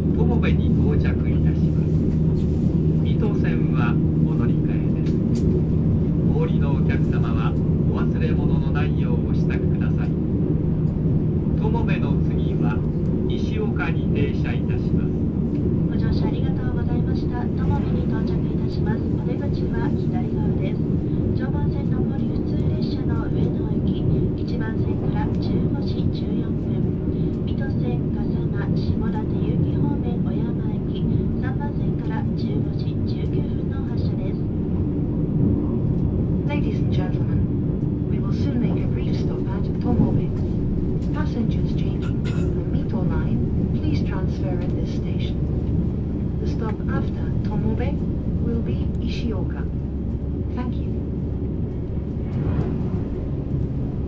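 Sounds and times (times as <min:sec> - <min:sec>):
low hum: 0:00.0 - 0:54.0
train rumbling at speed: 0:00.0 - 0:54.0.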